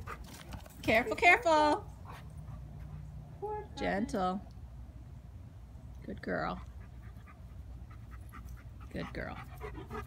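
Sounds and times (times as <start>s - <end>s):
dog panting: 2.0s - 3.2s, 6.6s - 10.0s.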